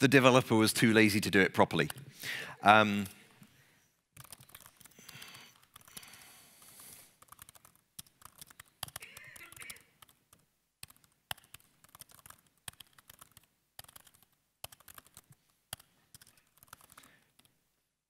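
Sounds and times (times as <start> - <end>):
typing on a laptop keyboard: 4.2 - 17.5.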